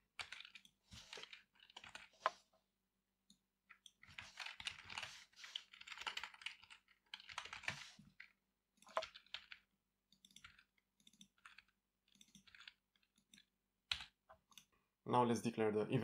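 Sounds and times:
computer keyboard typing: 0.1s - 2.4s, 3.7s - 14.7s.

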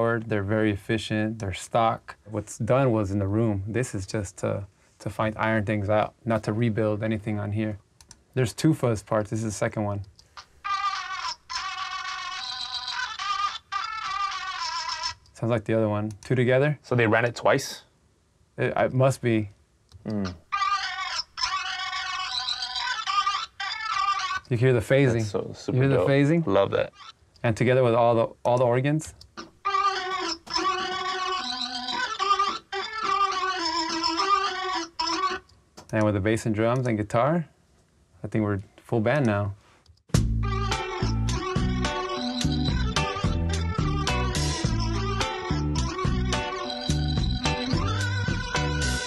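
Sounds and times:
fuzz-distorted guitar lead notes: 40.2s - 49.0s
organ: 40.2s - 49.0s.

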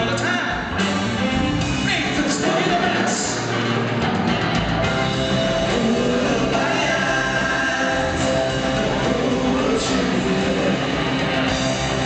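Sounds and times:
live rock band music: 0.0s - 12.0s
voices singing long held notes: 5.0s - 12.0s.

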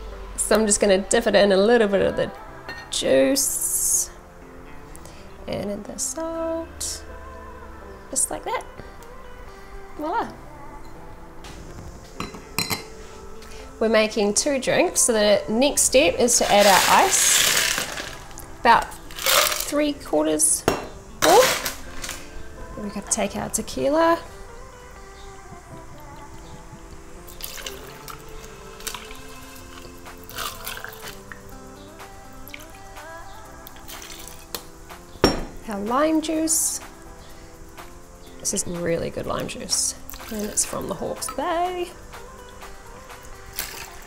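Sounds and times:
background music: 0.0s - 44.0s
glasses clinking: 2.7s - 3.0s, 12.2s - 13.0s, 20.6s - 22.2s, 27.3s - 31.2s, 35.2s - 35.6s
liquid dripping and splashing: 27.3s - 31.4s, 33.7s - 34.5s, 40.1s - 41.4s, 43.5s - 44.0s.

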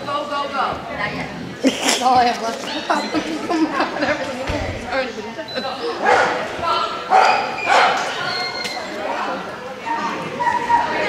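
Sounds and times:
dog barking: 6.0s - 6.5s, 7.1s - 8.2s.

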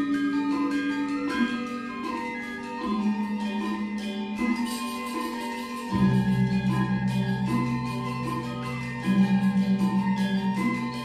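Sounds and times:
gamelan ensemble playing: 0.0s - 11.0s.

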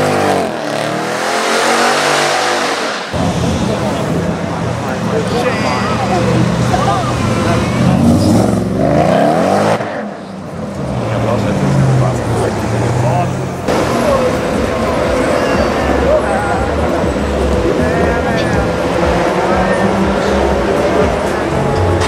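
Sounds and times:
car engine revving: 0.0s - 22.0s
crowd voices: 0.0s - 22.0s.

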